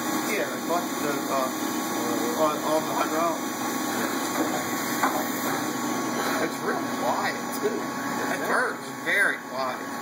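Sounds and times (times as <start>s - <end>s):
quiet machine hum: 0.0s - 10.0s.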